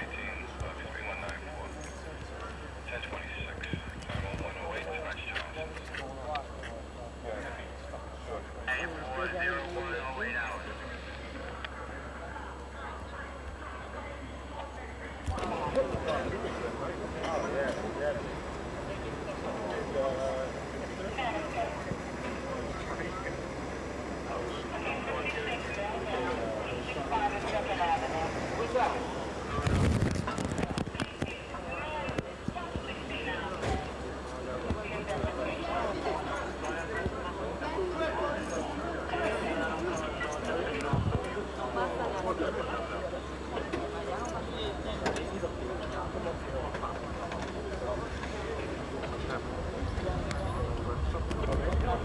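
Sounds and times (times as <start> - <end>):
distant people talking: 0.0 - 52.0
indistinct voices: 0.0 - 52.0.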